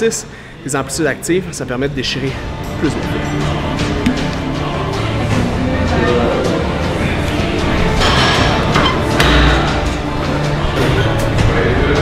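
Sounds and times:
background music: 0.0 - 12.0.

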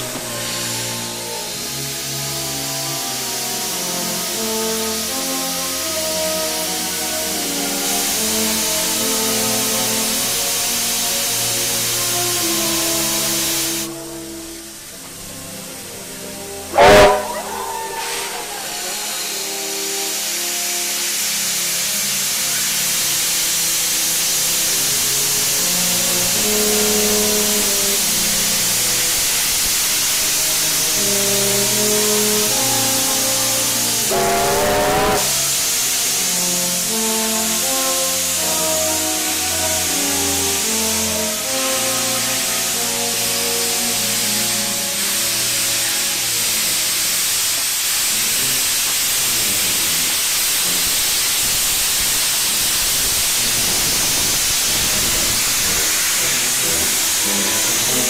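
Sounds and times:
background music melody: 0.0 - 21.1, 21.8 - 47.0
steam venting hiss: 0.0 - 58.0
short wavering whistle: 16.7 - 20.1, 32.4 - 35.9.

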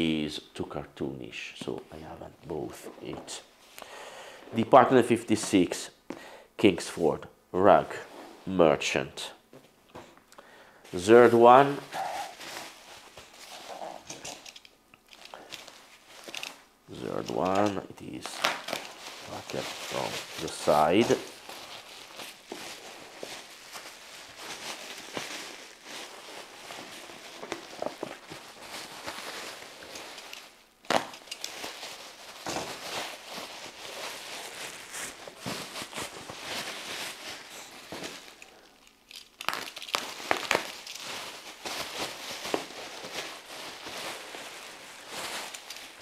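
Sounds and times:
bubble wrap crinkling: 11.0 - 46.0.

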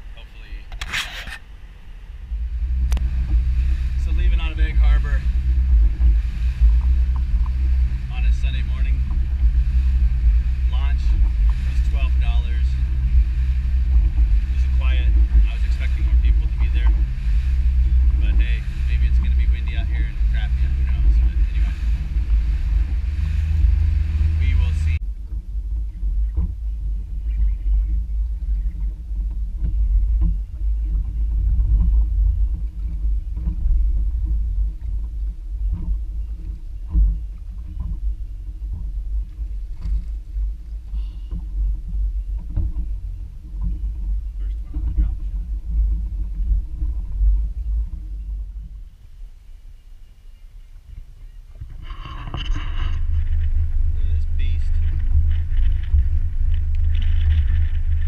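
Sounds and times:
outboard motor running: 0.0 - 58.0
water noise: 0.0 - 58.0
wind: 0.0 - 58.0.

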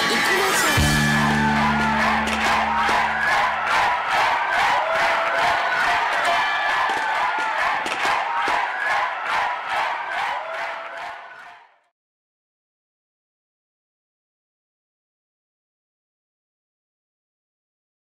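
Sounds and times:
crowd cheering and whooping: 0.0 - 11.6
music chord: 0.8 - 3.6
rhythmic clapping: 0.8 - 11.7.

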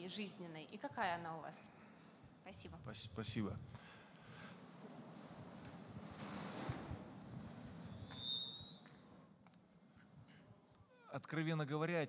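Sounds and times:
low room noise: 0.0 - 12.0
microphone feedback squeal: 7.9 - 9.2.

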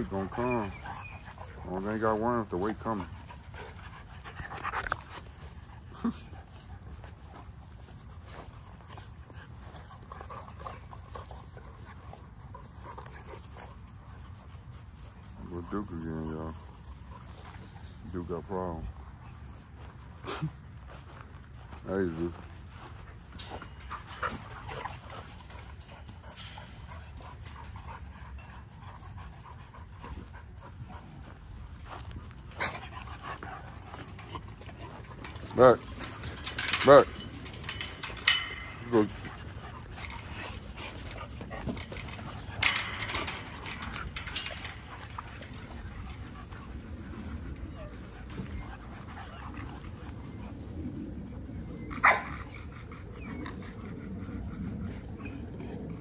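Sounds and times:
dogs barking: 52.0 - 52.3.

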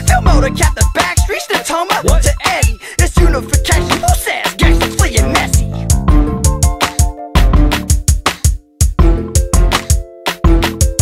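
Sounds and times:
hip hop drum beat: 0.0 - 11.0.

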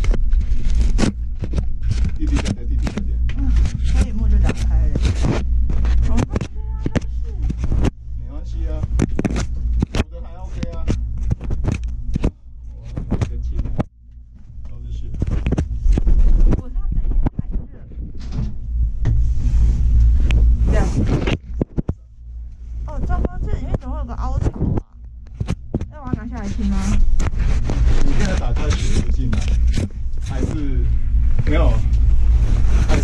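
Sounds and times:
gondola cabin rumbling: 0.0 - 13.8, 14.5 - 25.0, 25.6 - 33.0
knocks and scrapes: 0.0 - 22.0, 22.6 - 33.0
quiet talk: 2.2 - 5.2, 6.0 - 9.0, 10.0 - 11.0, 12.6 - 13.8, 14.6 - 15.4, 16.4 - 18.0, 22.8 - 25.0, 27.9 - 29.6.

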